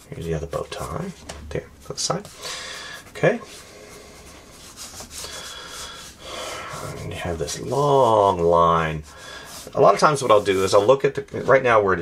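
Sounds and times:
pencil scratching on paper: 0:04.2 - 0:10.9.

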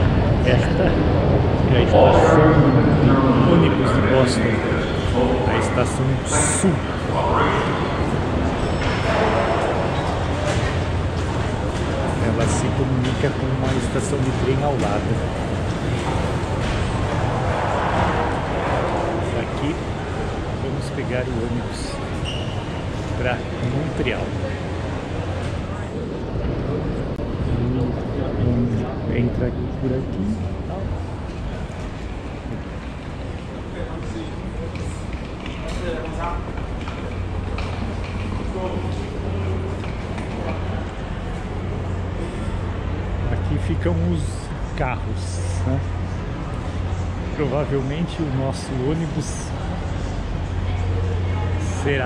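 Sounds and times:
constant low hum: 0:00.0 - 0:52.0
faint murmur of people: 0:00.0 - 0:52.0
indistinct voices: 0:00.0 - 0:52.0.

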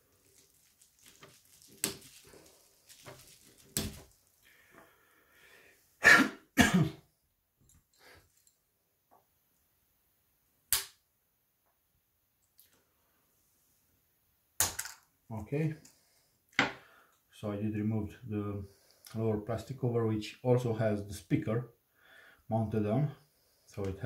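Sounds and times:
person coughing: 0:06.0 - 0:07.0.

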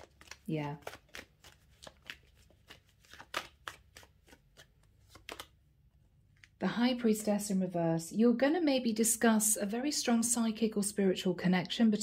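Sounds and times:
cards being shuffled: 0:00.0 - 0:06.6.

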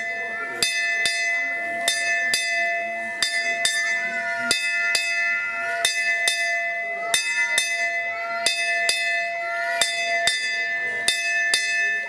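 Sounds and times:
metal bell ringing: 0:00.0 - 0:12.0.

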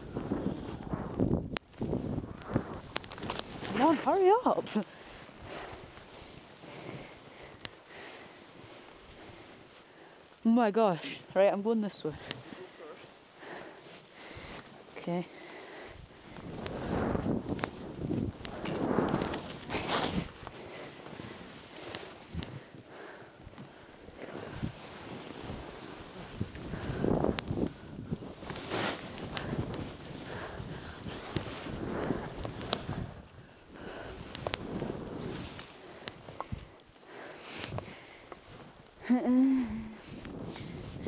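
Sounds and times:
skis swishing through snow: 0:01.8 - 0:10.0, 0:16.4 - 0:22.6, 0:24.2 - 0:38.8, 0:39.9 - 0:41.0.

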